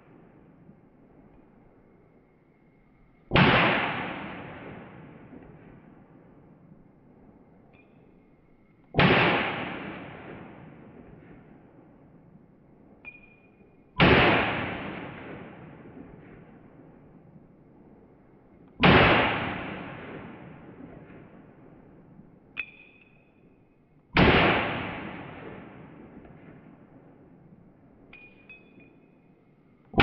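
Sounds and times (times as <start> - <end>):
pistol shots with echo: 3.3 - 6.4, 8.9 - 12.0, 14.0 - 17.2, 18.8 - 22.1, 24.1 - 27.4.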